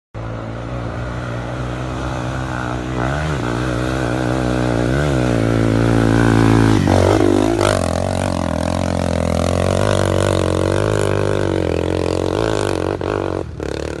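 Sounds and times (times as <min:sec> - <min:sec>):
dirt bike engine revving: 0:00.2 - 0:14.0.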